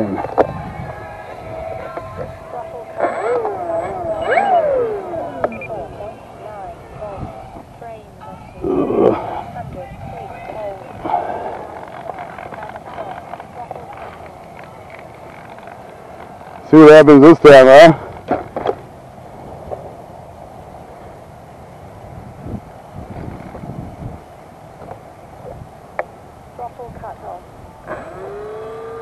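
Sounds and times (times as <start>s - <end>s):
voices calling out: 0.0s - 14.3s.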